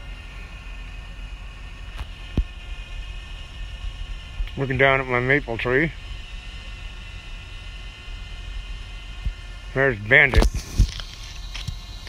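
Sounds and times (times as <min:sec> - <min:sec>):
drone propellers whining: 0:00.0 - 0:12.0
low rumble: 0:00.0 - 0:12.0.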